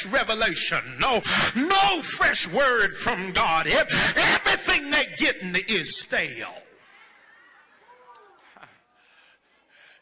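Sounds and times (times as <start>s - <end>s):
intake of breath: 8.5s - 10.0s.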